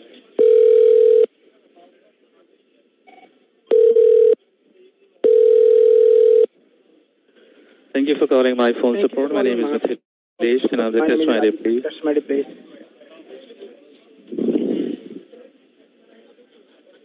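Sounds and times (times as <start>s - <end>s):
telephone line tones: 0.4s - 1.3s, 3.7s - 4.4s, 5.2s - 6.5s.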